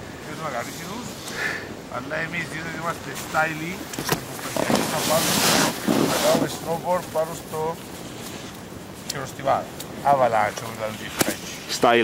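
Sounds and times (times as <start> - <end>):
wind on microphone: 0.0 - 9.0.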